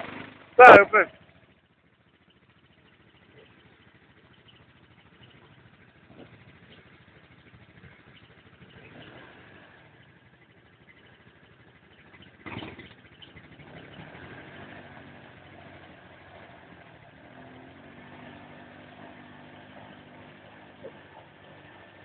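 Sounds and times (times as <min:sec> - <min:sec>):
quad bike engine at low speed: 0:00.0 - 0:22.0.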